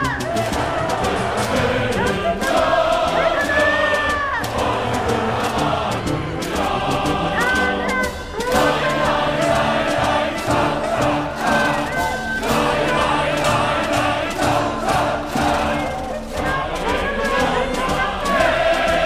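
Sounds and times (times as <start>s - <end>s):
music with crowd singing along: 0.0s - 19.0s
outdoor crowd noise: 0.0s - 19.0s
steady beat: 0.0s - 19.0s.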